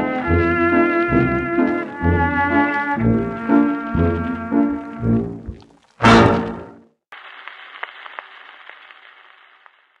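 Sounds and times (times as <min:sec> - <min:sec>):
record surface hiss: 0:00.0 - 0:10.0.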